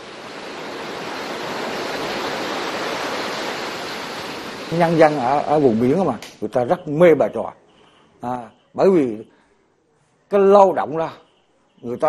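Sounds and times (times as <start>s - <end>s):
waves breaking on a beach: 0.0s - 6.3s.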